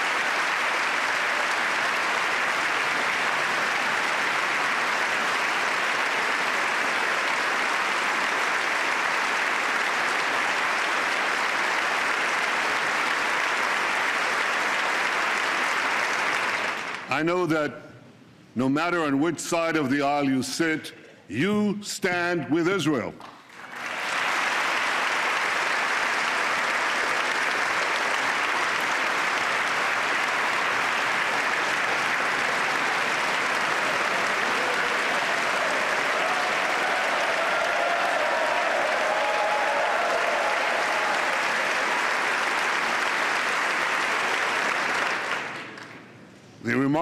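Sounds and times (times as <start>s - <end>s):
crowd applauding: 0.0s - 17.1s, 23.4s - 46.2s.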